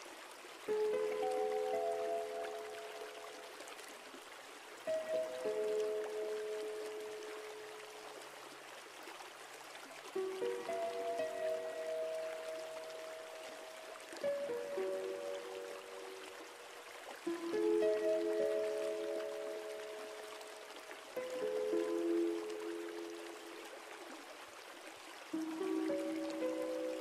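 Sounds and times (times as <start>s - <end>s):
soft slow relaxation music: 0.0s - 27.0s.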